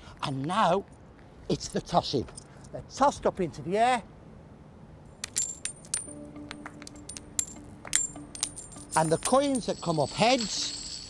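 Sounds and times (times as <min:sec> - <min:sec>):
coins clinking on concrete: 0:05.2 - 0:11.0.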